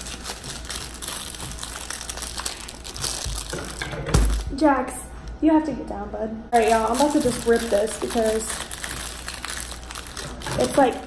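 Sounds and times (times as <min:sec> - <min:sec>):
packaging rustling and crinkling: 0:00.0 - 0:04.5, 0:06.6 - 0:11.0.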